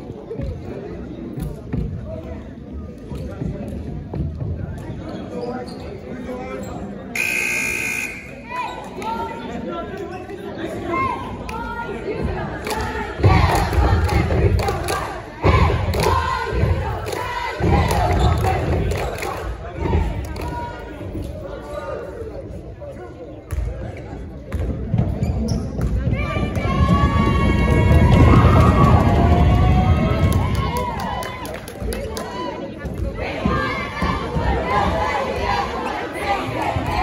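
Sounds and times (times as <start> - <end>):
crowd voices and shouting: 0.0 - 37.0
scoreboard buzzer: 7.2 - 8.4.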